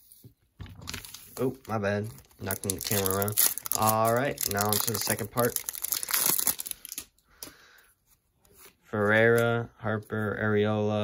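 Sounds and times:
foil wrapper crinkling: 0:00.8 - 0:07.1.

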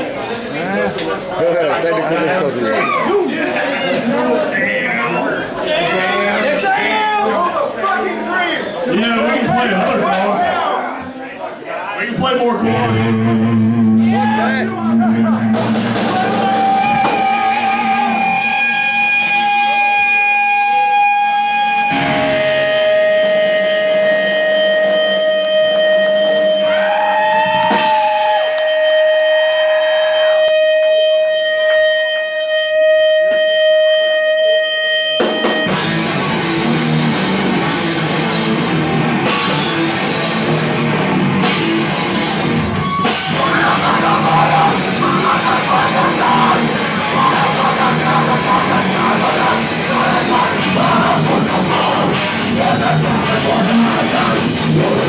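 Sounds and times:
distorted guitars: 0:12.2 - 0:55.0
drum kit: 0:12.6 - 0:31.8, 0:32.7 - 0:55.0
electric guitar held notes: 0:12.6 - 0:55.0
heavy rock band: 0:12.6 - 0:55.0.

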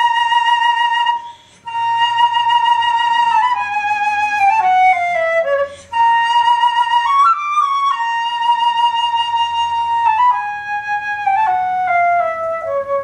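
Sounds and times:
flute playing: 0:00.0 - 0:13.0
flute player breath: 0:01.2 - 0:01.9, 0:05.5 - 0:06.1.

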